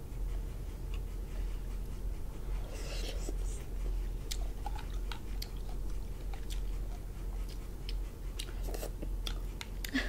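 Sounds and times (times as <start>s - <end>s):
person chewing: 4.2s - 10.0s.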